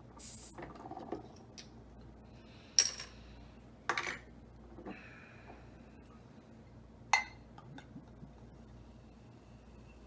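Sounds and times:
soda hiss: 0:00.2 - 0:00.6
glass clink: 0:07.1 - 0:07.4.

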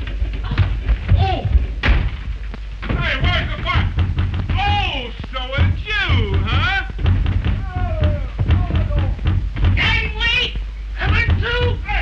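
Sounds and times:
knocks and thuds of scuffle: 0:00.0 - 0:10.3, 0:11.0 - 0:11.8.

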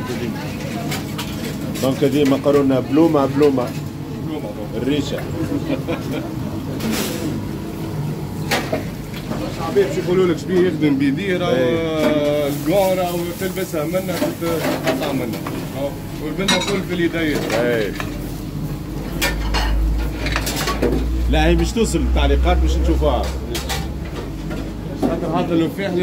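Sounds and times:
gas burners rumbling: 0:00.0 - 0:26.0.

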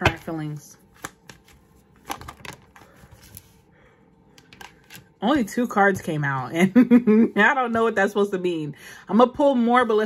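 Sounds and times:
soft card rustle: 0:00.8 - 0:03.6
cards shuffling clicks: 0:00.9 - 0:03.5.

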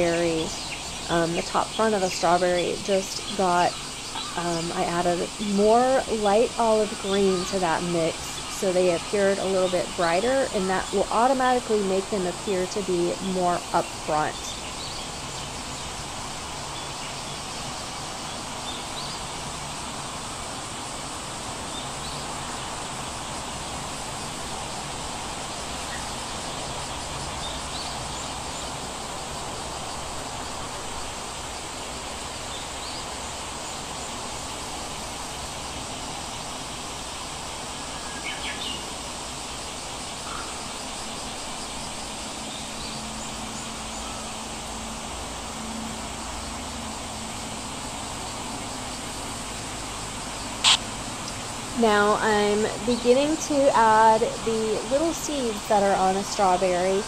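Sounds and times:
steady background hiss: 0:00.0 - 0:57.0.

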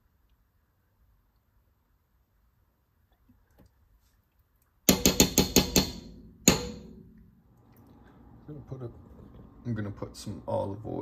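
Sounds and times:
spoon tapping metal saucepan: 0:04.9 - 0:07.0.

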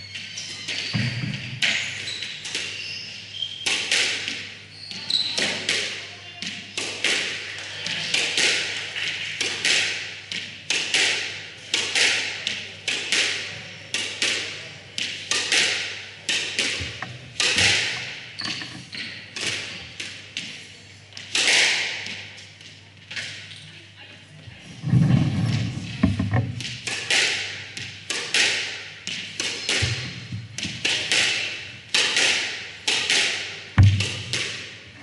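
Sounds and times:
squash ball cracking off rackets: 0:26.1 - 0:34.8.

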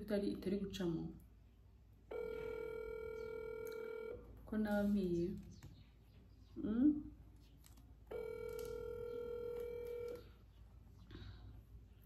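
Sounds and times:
phone ringing tone beep: 0:02.1 - 0:04.2, 0:08.1 - 0:10.4.

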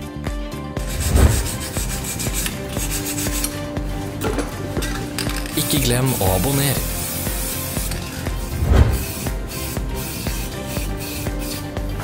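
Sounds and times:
wire brush scrubbing metal: 0:00.8 - 0:12.0.

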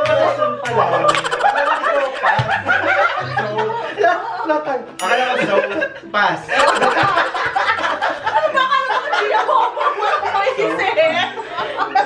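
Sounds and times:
people talking: 0:01.1 - 0:02.5, 0:06.6 - 0:08.0
group of people laughing: 0:01.1 - 0:04.2, 0:06.6 - 0:10.4.

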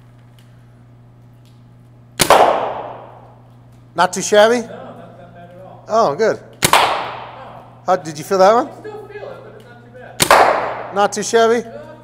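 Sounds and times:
paintball marker shot: 0:02.2 - 0:03.2, 0:06.6 - 0:07.3, 0:10.2 - 0:10.9.

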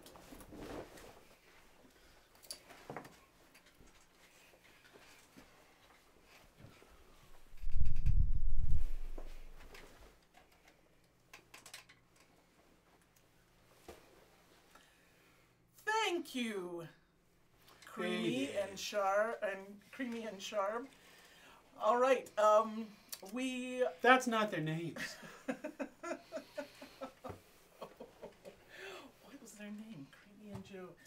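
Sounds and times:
microphone handling rumble: 0:07.5 - 0:09.6.

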